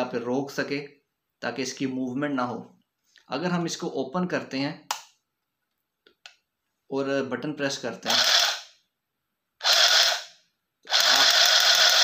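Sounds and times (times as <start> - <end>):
stitching machine buzzing: 9.6 - 10.3, 10.9 - 12.0.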